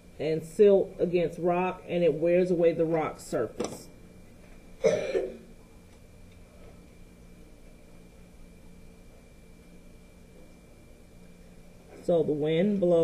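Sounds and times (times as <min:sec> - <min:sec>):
faint steady hum: 0:00.0 - 0:13.0
person coughing: 0:04.8 - 0:05.5.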